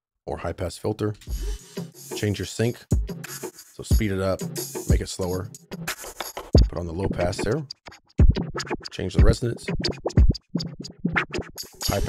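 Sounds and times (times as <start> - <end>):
filtered drum loop: 1.2 - 12.0.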